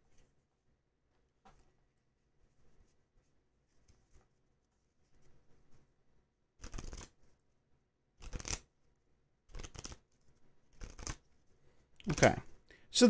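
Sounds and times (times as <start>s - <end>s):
rustling handling noises: 0.0s - 6.2s.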